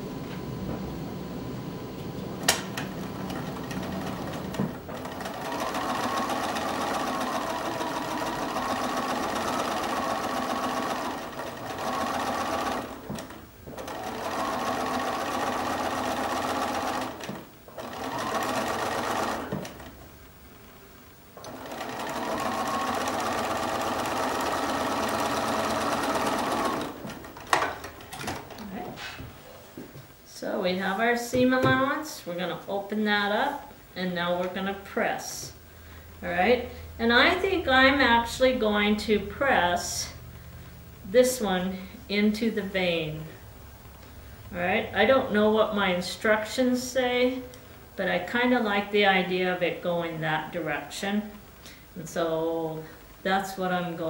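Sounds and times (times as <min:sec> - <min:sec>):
sewing machine whining: 0:02.5 - 0:20.0, 0:21.4 - 0:28.5.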